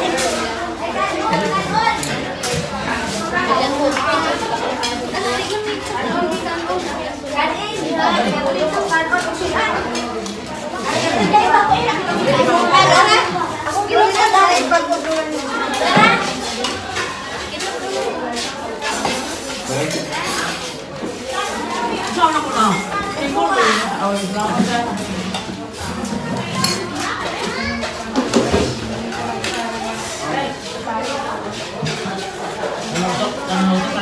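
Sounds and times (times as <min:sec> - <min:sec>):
chatter of adults and children: 0:00.0 - 0:34.0
spoons clinking on plates: 0:18.8 - 0:30.2.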